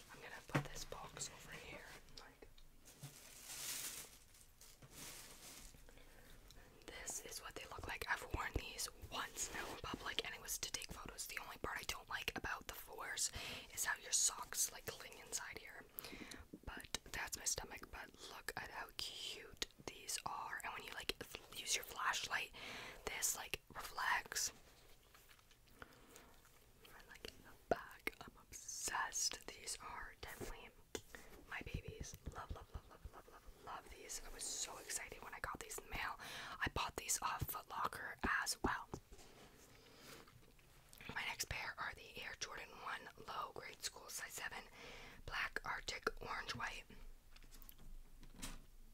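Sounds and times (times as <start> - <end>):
woman whispering: 0.0 - 2.5, 6.8 - 15.9, 16.6 - 24.6, 26.8 - 30.9, 31.5 - 39.0, 41.0 - 47.0.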